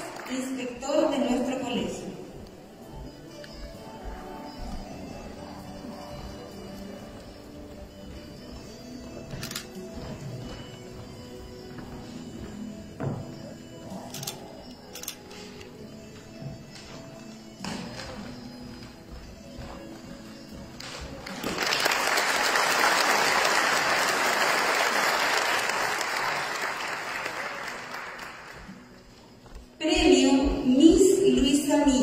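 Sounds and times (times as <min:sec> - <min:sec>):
soft background music: 0:00.0 - 0:32.0
audience applause: 0:21.3 - 0:28.6.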